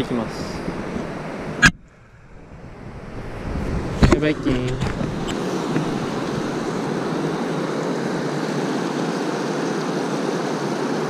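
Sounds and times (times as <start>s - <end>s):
wind on microphone: 0.0s - 7.1s
river water rushing: 4.8s - 8.8s.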